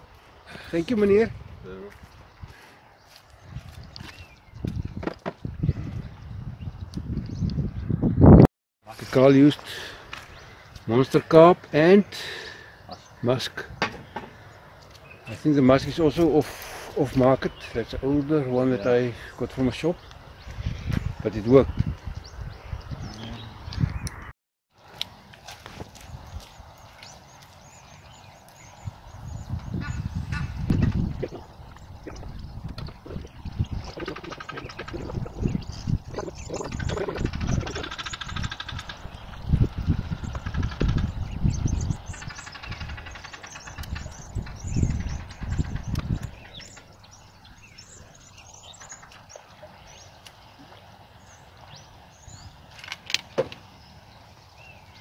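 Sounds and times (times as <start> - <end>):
wind buffeting microphone: 0.0 - 8.5, 13.4 - 24.3, 25.6 - 52.7
bird calls: 9.2 - 24.3, 25.7 - 55.0.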